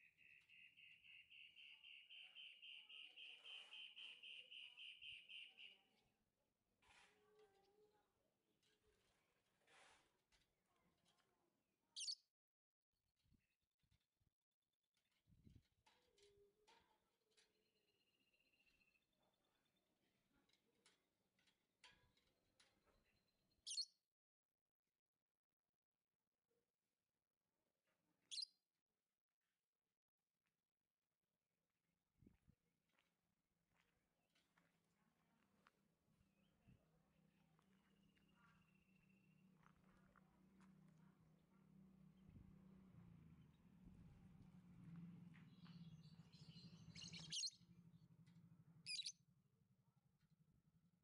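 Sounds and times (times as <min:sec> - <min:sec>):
lovebird chirping: 0:00.0 - 0:05.9, 0:46.0 - 0:47.6, 0:48.8 - 0:49.1.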